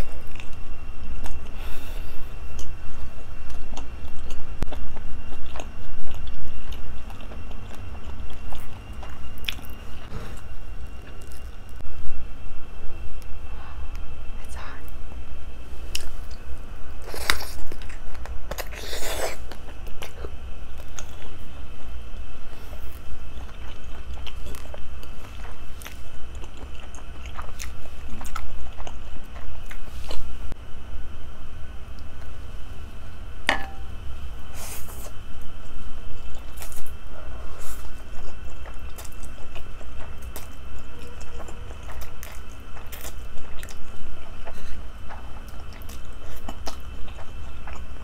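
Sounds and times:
close chewing with wet mouth clicks: 3.4 - 10.1, 22.6 - 30.2, 37.8 - 48.0.

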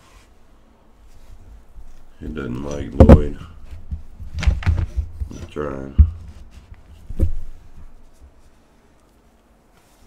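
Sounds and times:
short thump: 3.0 - 7.8.

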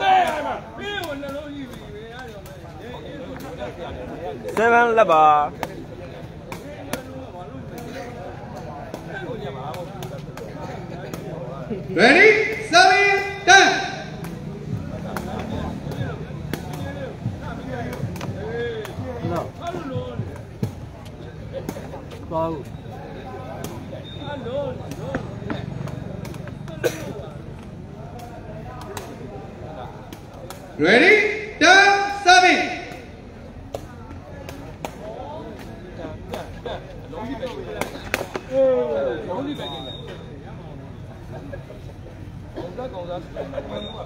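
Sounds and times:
crowd chatter: 0.0 - 44.0
loud voice calls: 12.0 - 14.2, 30.8 - 33.1.

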